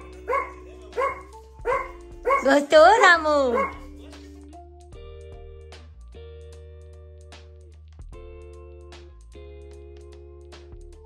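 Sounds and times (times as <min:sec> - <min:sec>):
small dog yapping: 0:00.3 - 0:03.9.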